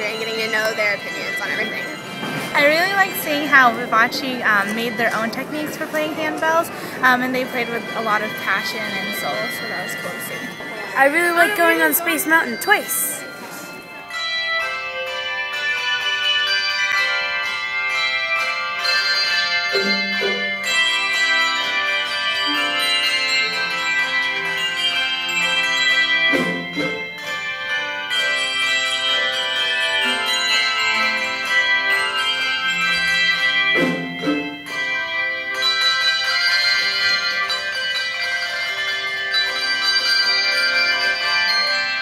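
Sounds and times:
handbell choir playing: 0.0s - 42.0s.

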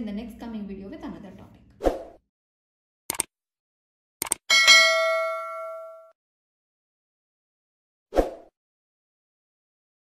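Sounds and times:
quick clicks: 3.1s - 3.3s, 4.2s - 4.4s
notification bell ding: 4.5s - 6.1s.

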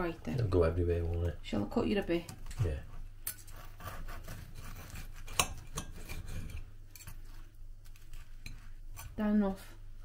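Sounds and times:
knife scraping ceramic plate: 3.3s - 9.2s.

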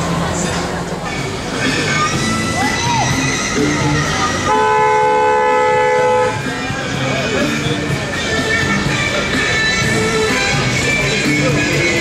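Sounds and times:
car horn: 4.4s - 6.6s.

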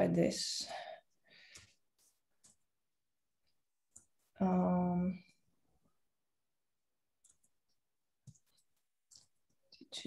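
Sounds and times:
computer keyboard typing: 7.2s - 9.6s.

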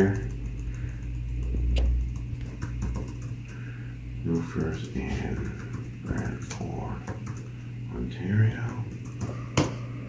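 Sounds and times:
laptop keyboard keystrokes: 0.0s - 3.6s, 4.3s - 7.5s, 8.6s - 9.7s.

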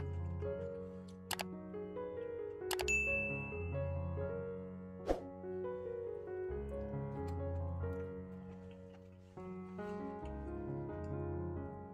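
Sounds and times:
soft background music: 0.0s - 11.9s
bright bell ding: 2.9s - 3.7s.

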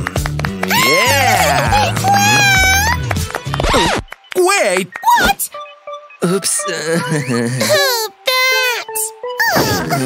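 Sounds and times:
music: 0.0s - 10.0s
cartoon wordless vocal sounds: 0.7s - 3.0s.

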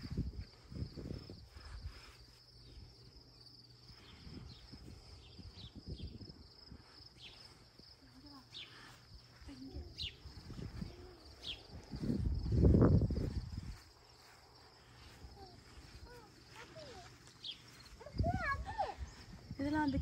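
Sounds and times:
insects chirring: 0.0s - 20.0s.

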